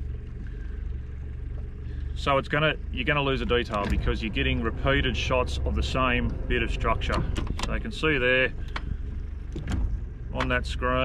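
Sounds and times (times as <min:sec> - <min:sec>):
boat motor humming: 0:00.0 - 0:11.0.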